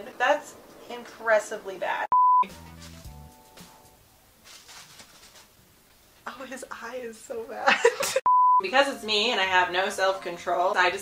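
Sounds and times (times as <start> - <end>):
loud high test-tone beep: 2.1 - 2.5, 8.3 - 8.6.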